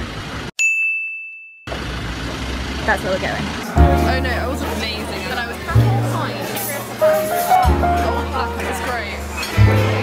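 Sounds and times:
street noise: 0.0 - 0.5, 1.7 - 10.0
bright bell-like ding: 0.6 - 1.7.

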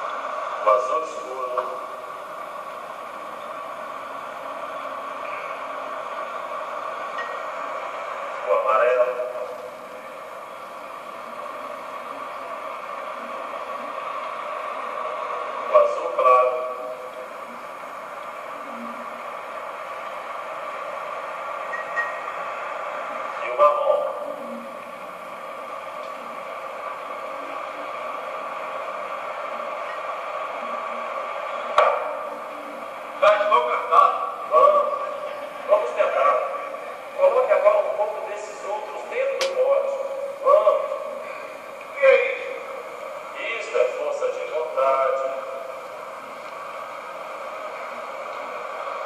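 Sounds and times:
faint steady tones: 0.0 - 49.0
recording hiss: 0.0 - 49.0
room noise: 0.0 - 49.0.

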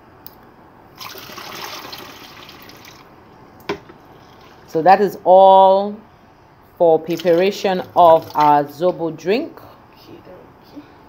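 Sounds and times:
drink pouring into plastic bottle: 1.0 - 3.1.

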